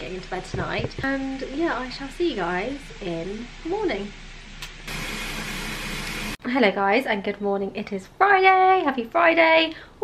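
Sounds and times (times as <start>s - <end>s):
tap water pouring into bathtub: 3.6s - 6.4s.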